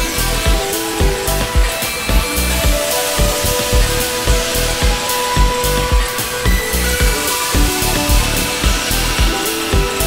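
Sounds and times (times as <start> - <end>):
held synth notes: 0.0 - 10.0
hissing noise layer: 0.0 - 10.0
kick drum beat: 0.0 - 10.0
synth bass: 0.0 - 10.0.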